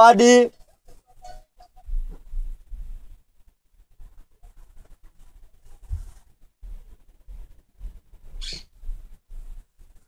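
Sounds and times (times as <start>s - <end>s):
faint low thumping: 5.7s - 9.8s.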